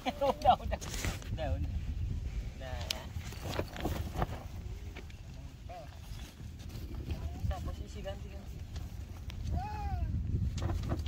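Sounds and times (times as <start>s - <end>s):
young child vocal sounds: 9.5s - 10.2s.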